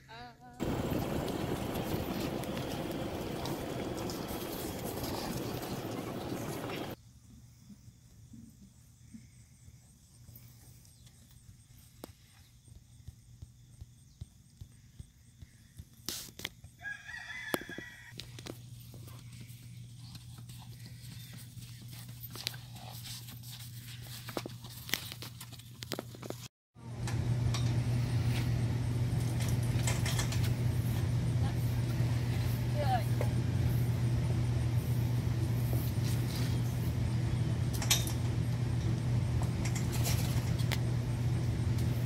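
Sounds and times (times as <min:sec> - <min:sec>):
low mechanical hum: 0:00.1 - 0:07.0, 0:17.9 - 0:42.0
hoofbeats on grass: 0:00.6 - 0:07.0, 0:11.4 - 0:26.4
rooster crowing: 0:16.8 - 0:18.2.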